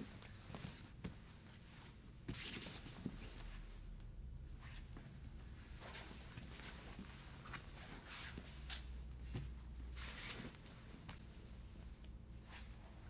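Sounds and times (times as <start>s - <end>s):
low room hum: 0.0s - 13.0s
fabric and skin swishing on mats: 4.6s - 13.0s.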